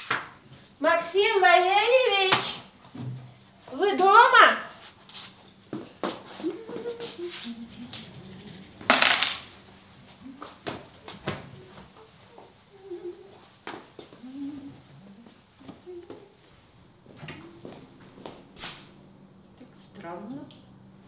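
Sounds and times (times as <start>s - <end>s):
household things clinking and knocking: 8.8s - 9.6s.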